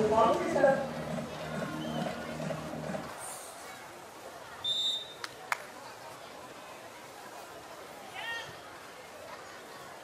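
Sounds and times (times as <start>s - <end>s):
referee's whistle blast: 4.6s - 5.2s.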